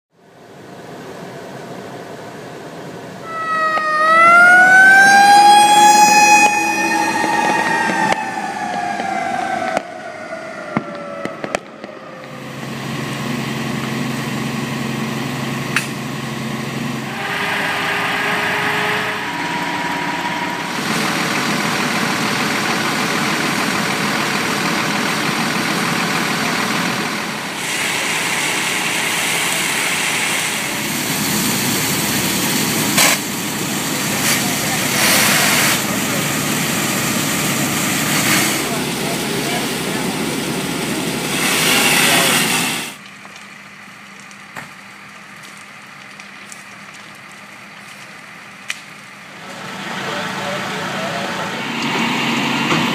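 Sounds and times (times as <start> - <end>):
fire engine idling: 0.1 - 52.9
structure fire noise: 0.4 - 52.9
voices: 38.3 - 42.6, 49.4 - 52.9.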